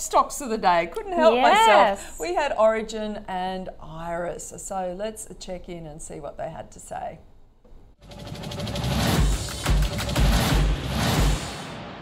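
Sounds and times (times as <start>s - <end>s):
news ident music: 8.0s - 12.0s.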